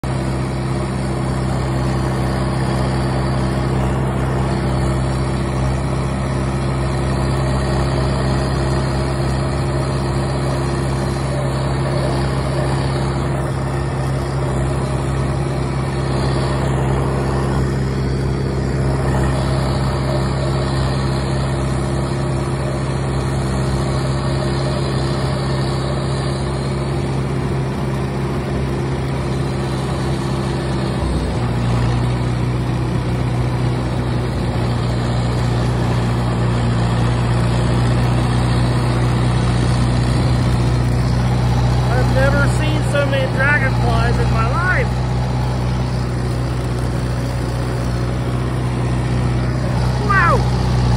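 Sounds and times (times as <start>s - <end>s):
rotary cutter cutting grass: 0.0s - 50.9s
tractor engine droning: 0.0s - 50.9s.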